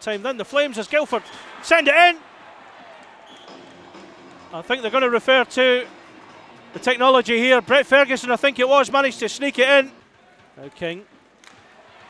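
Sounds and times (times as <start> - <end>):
faint crowd: 0.0 - 12.0
ice rink arena background noise: 0.0 - 12.0
commentator shouting: 0.5 - 2.2.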